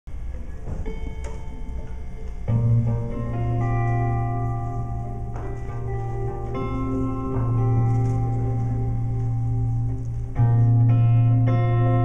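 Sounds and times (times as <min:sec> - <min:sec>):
low room rumble: 0:00.1 - 0:12.0.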